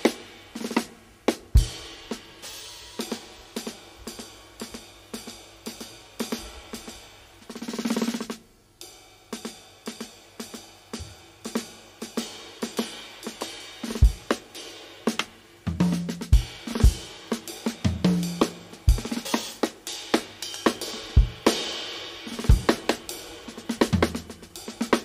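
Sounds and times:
drum kit playing: 0.0 - 25.0
drum roll: 0.0 - 25.0.

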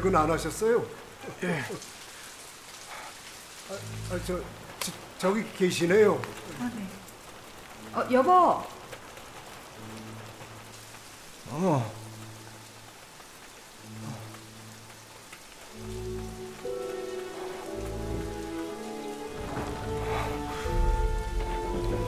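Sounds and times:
steady rain: 0.0 - 22.0
tense film score: 0.0 - 22.0.

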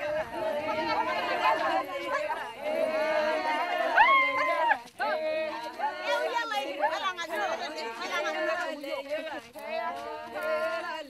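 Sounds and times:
women talking and calling out: 5.8 - 9.0.

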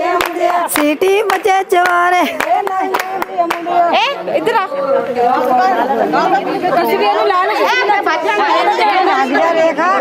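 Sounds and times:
women talking and calling out: 0.0 - 10.0.

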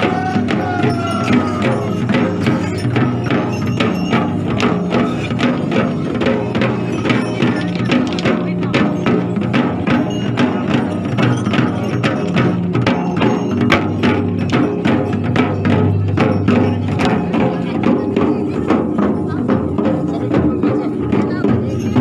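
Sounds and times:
frame drums beating: 0.0 - 22.0
murmur of voices or singing: 0.0 - 22.0.

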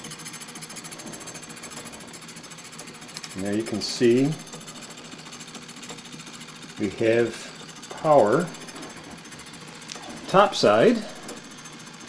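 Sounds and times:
electric fan motor running: 0.0 - 12.0.

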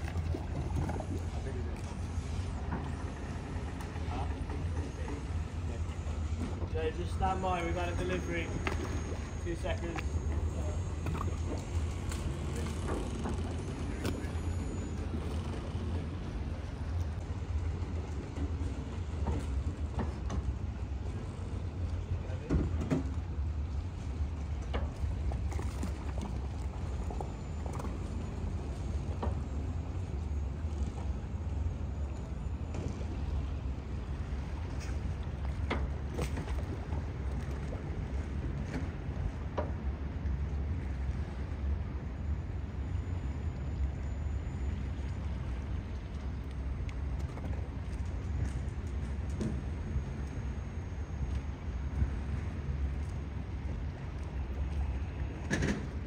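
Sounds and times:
low mechanical hum of machinery: 0.0 - 56.0.

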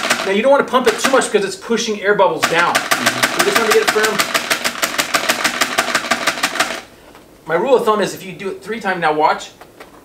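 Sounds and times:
motor running with rapid knock: 0.0 - 0.3, 2.4 - 6.9.

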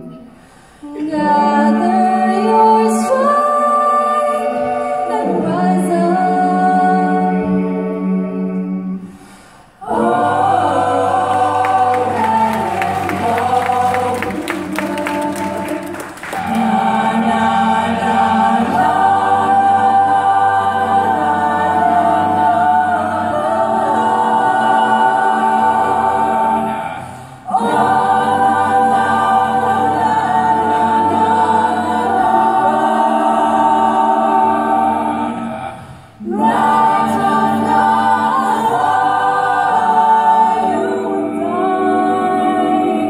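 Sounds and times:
choir singing a cappella: 0.0 - 43.0.

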